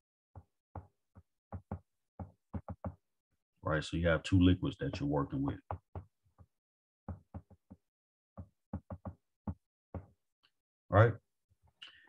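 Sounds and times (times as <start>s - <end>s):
stylus tapping on glass screen: 0.4s - 3.0s, 4.9s - 6.5s, 7.1s - 10.2s.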